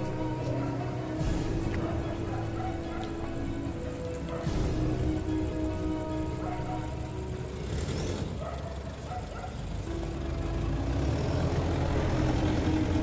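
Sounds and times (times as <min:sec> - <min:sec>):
street noise: 0:00.0 - 0:13.0
vehicle engine running: 0:00.0 - 0:13.0.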